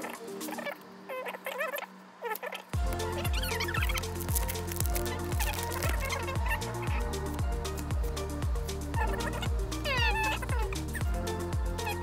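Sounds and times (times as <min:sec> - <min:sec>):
kick drum beat: 0:02.8 - 0:12.0
sustained bass line: 0:02.8 - 0:12.0.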